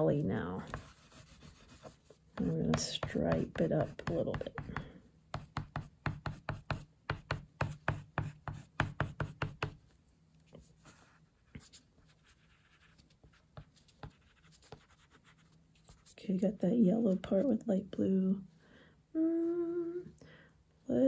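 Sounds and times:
oil pastel scraping on paper: 0.1 - 4.7.

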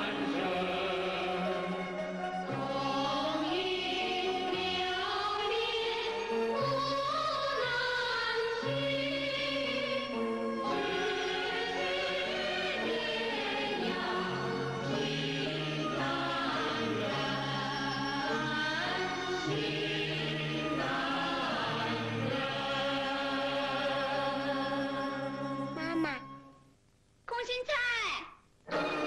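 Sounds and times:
choir singing held chords: 0.0 - 25.8, 28.7 - 29.0.

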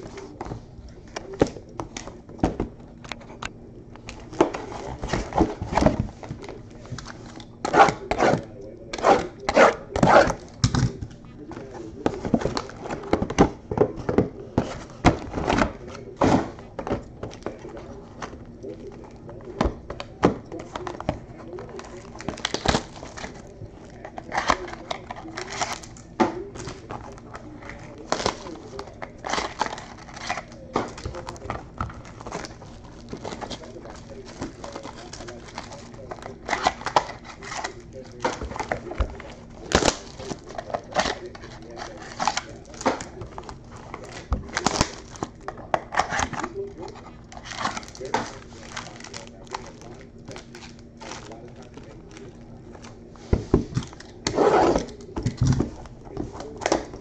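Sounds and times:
foil wrappers crinkling: 0.0 - 57.0.

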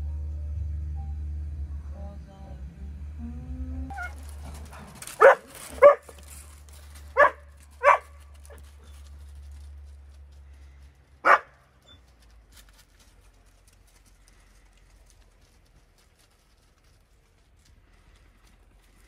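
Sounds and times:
dog barking: 5.2 - 6.3, 7.1 - 8.6, 11.2 - 11.6.

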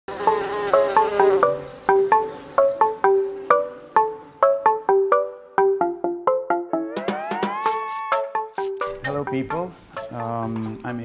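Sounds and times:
buzzing bee sound effect: 0.1 - 5.0, 7.0 - 8.8
bright melody of pitched notes: 1.0 - 10.5.

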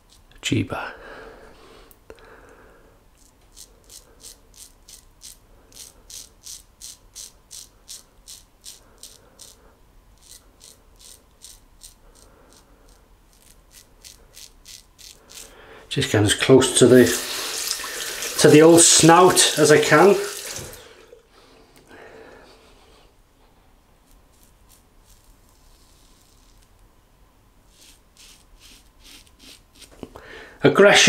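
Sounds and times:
razor scraping stubble: 3.2 - 9.6, 10.2 - 15.6, 24.0 - 26.7, 27.7 - 30.0.

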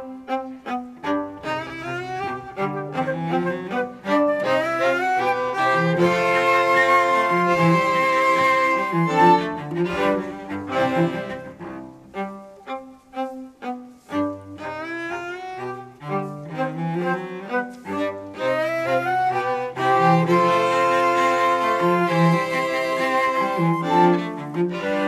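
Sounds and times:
classical string music with cello: 0.0 - 25.0.

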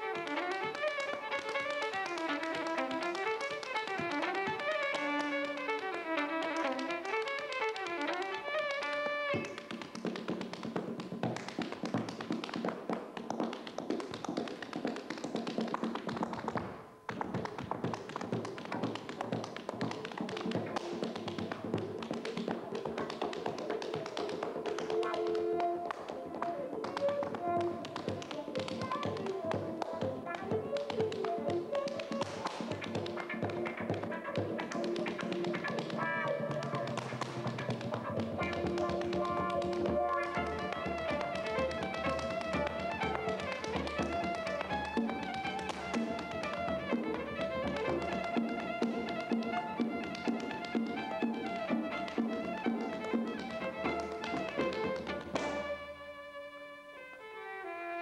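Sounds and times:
fiddle tune: 0.0 - 12.9, 17.5 - 58.0
dance shoes beating on wooden floor: 0.0 - 56.0.

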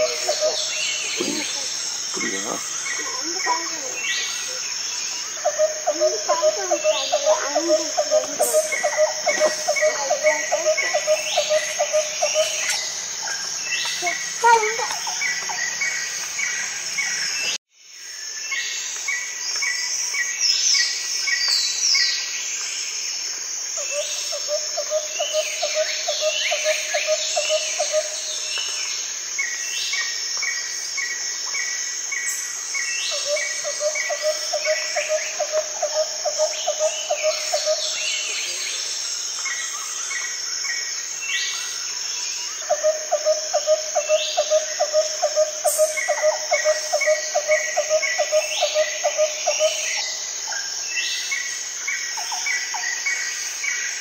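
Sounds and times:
insect drone: 0.0 - 54.0.

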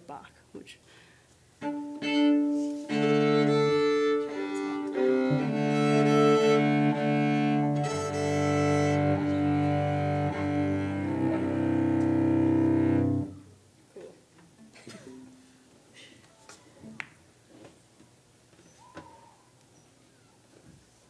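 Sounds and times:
solo cello bowed: 1.6 - 13.4.

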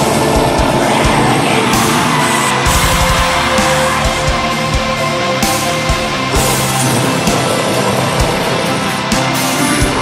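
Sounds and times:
distorted guitars: 0.0 - 10.0.

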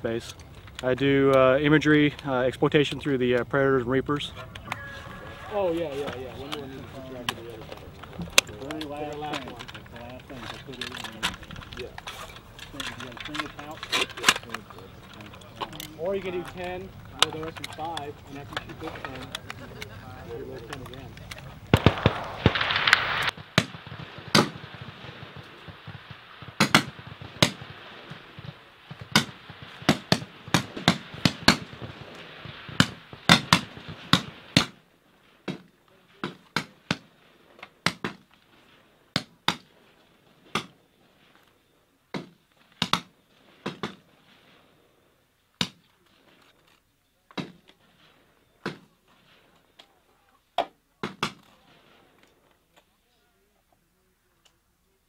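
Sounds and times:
sharp clicks and cracks: 0.2 - 3.5, 6.0 - 34.8, 40.5 - 40.8, 42.1 - 44.0, 50.6 - 52.9
rifle shots cracking: 4.2 - 34.8.

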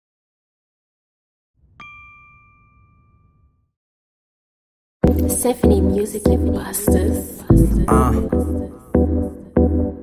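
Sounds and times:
bell-like ding: 1.7 - 3.7.

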